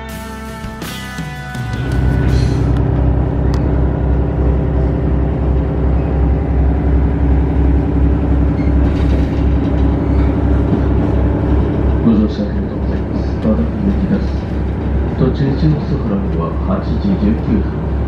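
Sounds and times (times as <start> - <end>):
diesel engine idling: 1.4 - 18.0.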